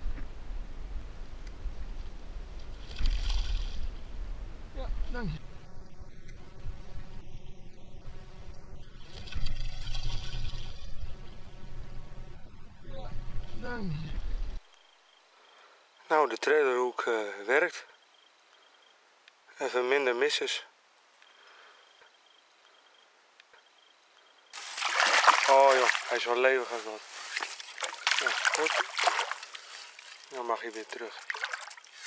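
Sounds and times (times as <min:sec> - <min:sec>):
fish splashing loudly in water: 0:24.6 - 0:32.0.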